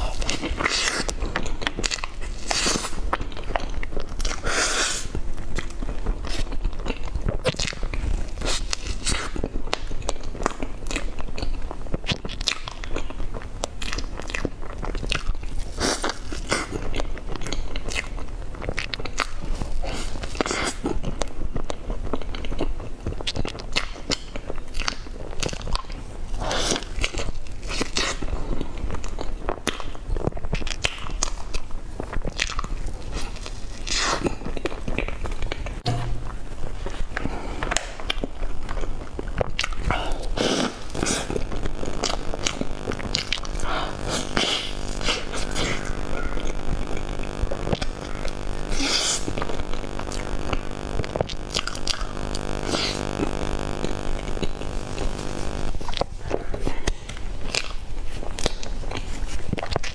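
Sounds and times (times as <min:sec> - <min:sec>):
chewing with wet mouth sounds: 0:00.0 - 0:35.8, 0:36.7 - 0:59.9
small mouth clicks: 0:37.6 - 0:59.9.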